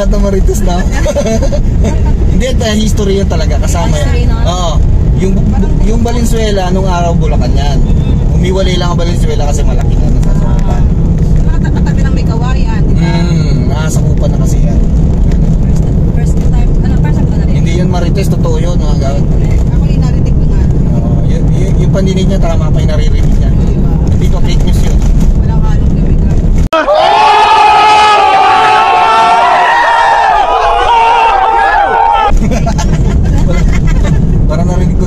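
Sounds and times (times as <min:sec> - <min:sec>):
people talking: 0:00.0 - 0:07.8, 0:08.4 - 0:14.8, 0:16.2 - 0:26.9, 0:32.4 - 0:35.0
car cabin rumble: 0:00.0 - 0:26.7, 0:32.2 - 0:35.0.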